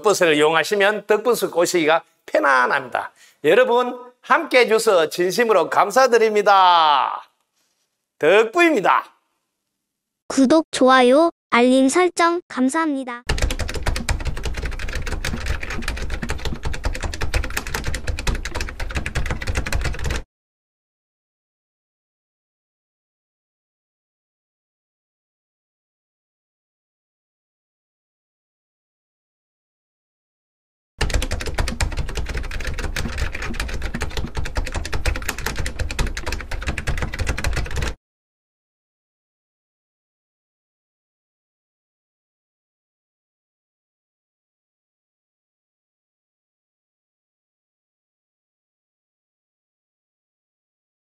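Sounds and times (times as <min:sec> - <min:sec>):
rapid keyboard typing clicks: 0:13.3 - 0:20.2, 0:31.0 - 0:38.0.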